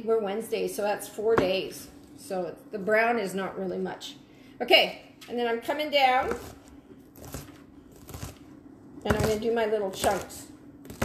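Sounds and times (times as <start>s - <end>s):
knife chopping green beans: 9.1s - 11.0s.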